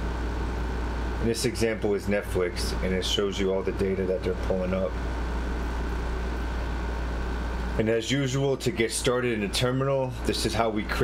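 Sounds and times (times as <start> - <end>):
low rumbling hum: 0.0 - 11.0.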